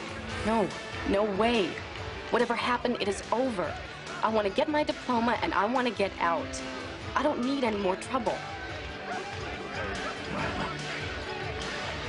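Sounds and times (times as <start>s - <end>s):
background music: 0.0s - 12.0s
faint voices: 8.7s - 12.0s.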